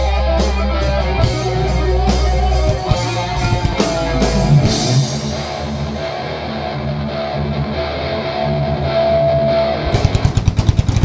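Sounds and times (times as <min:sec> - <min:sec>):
distorted electric guitars riff: 0:00.0 - 0:11.0
drums rapid hits: 0:01.2 - 0:05.9, 0:09.8 - 0:11.0.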